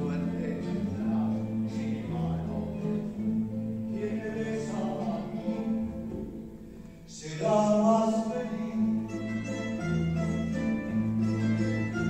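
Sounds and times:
mandolins and guitars playing chords: 0.0s - 12.0s.

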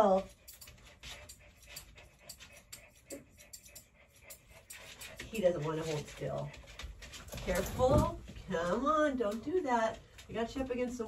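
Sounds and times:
shears snipping fur: 0.0s - 6.4s.

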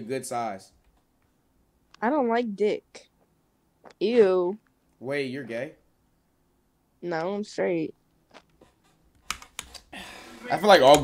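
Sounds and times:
computer keys clicking: 9.1s - 9.9s.

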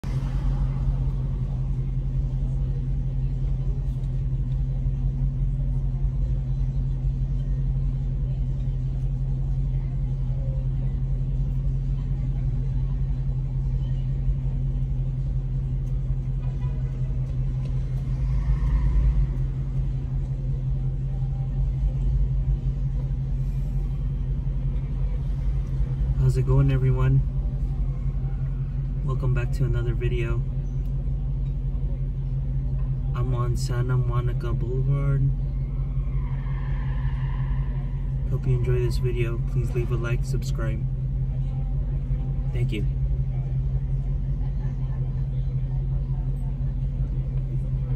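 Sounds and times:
car engine idling: 0.0s - 47.9s.

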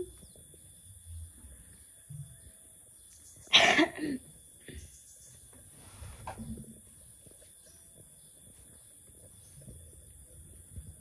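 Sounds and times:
loud cough: 3.5s - 4.2s.

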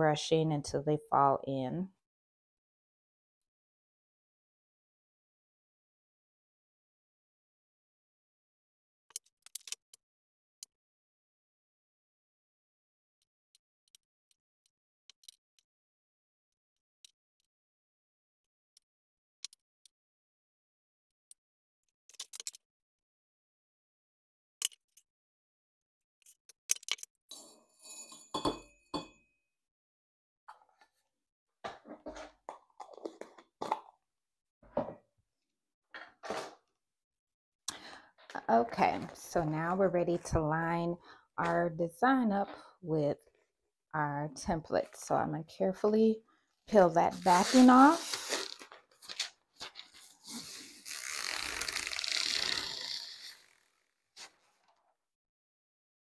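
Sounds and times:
rustling handling noise: 47.1s - 50.7s
adhesive tape peeling: 47.2s - 49.2s, 49.8s - 53.7s.

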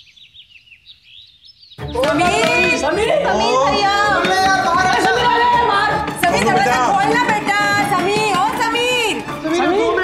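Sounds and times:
small birds chirping: 0.0s - 5.2s
loud music: 1.8s - 10.0s
voices: 1.8s - 10.0s.

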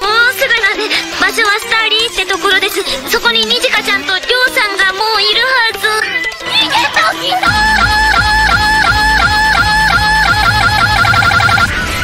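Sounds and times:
high electronic lead line: 6.5s - 11.8s.

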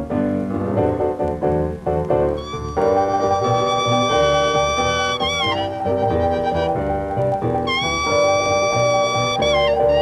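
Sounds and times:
guitar: 0.0s - 10.0s
piano: 0.0s - 10.0s
string bass: 0.0s - 10.0s
harmonica: 2.4s - 10.0s.

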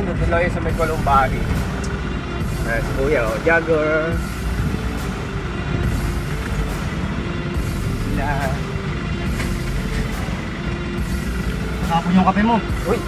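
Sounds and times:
wind rushing over microphone: 0.0s - 8.2s
rumbling road noise: 0.0s - 13.0s.

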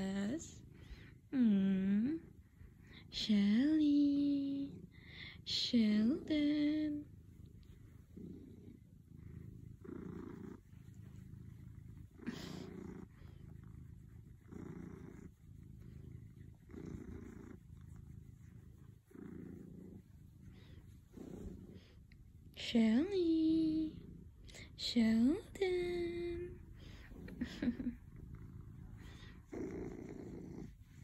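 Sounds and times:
cat purring: 0.0s - 31.0s.

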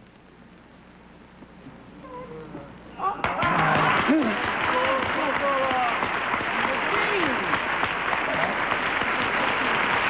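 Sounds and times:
audience applause: 3.2s - 10.0s.

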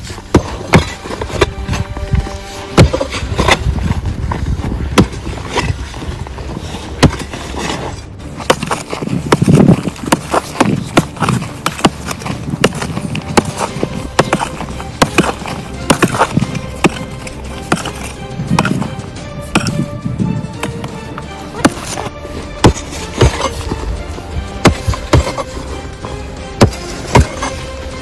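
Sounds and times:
gravel rattling: 0.0s - 28.0s
music: 0.0s - 28.0s
shovel digging rocky ground: 0.0s - 28.0s
pickaxe striking stone: 0.3s - 1.8s, 2.7s - 3.7s, 5.0s - 5.8s, 8.4s - 18.9s, 19.5s - 19.9s, 21.6s - 23.8s, 24.6s - 25.5s, 26.6s - 27.6s.

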